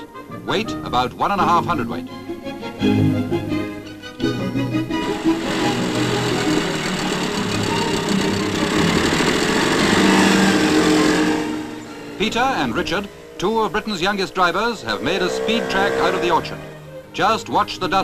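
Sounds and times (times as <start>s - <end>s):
orchestral music: 0.0s - 18.0s
small two-stroke engine running: 5.0s - 13.8s.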